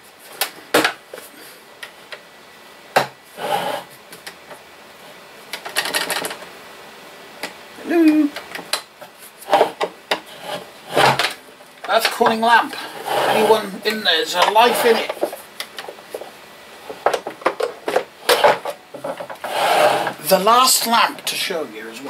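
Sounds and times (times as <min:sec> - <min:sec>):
short scraping rubs: 0:03.3 - 0:04.0, 0:09.1 - 0:11.3, 0:12.7 - 0:13.8, 0:14.4 - 0:15.3, 0:19.4 - 0:20.3.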